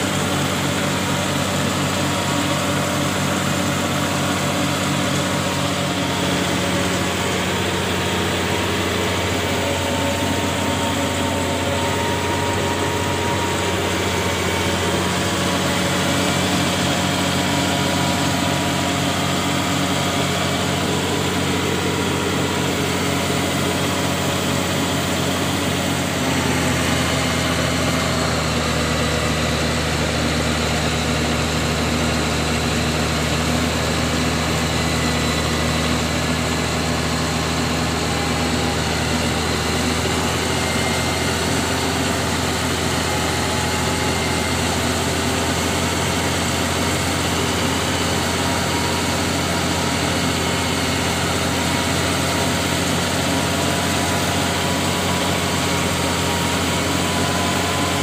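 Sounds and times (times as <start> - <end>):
bulldozer diesel engine running: 0.0 - 58.0.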